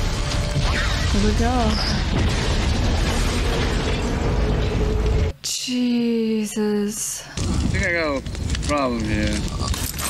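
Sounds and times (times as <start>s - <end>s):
explosion with deep rumble: 1.2s - 5.3s.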